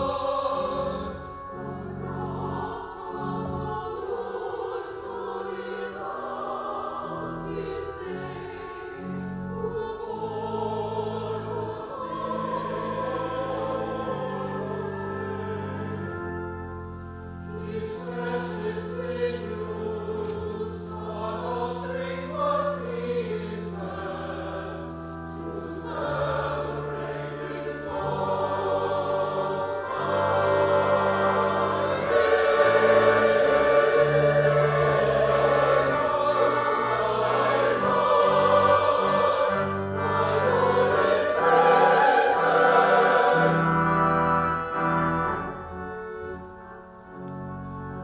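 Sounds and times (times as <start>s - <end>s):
church choir singing: 0.0s - 48.0s
organ holding low notes: 0.0s - 48.0s.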